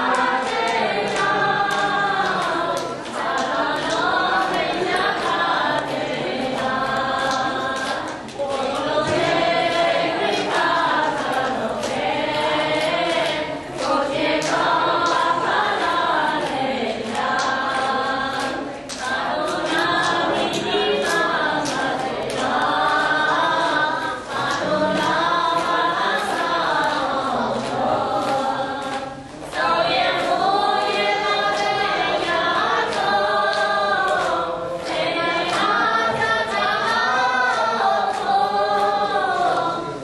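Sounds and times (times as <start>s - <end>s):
group chanting in unison: 0.0s - 40.0s.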